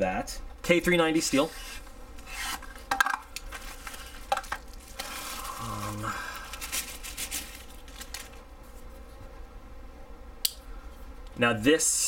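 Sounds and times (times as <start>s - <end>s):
cardboard rubbing and scraping: 1.3s - 2.8s.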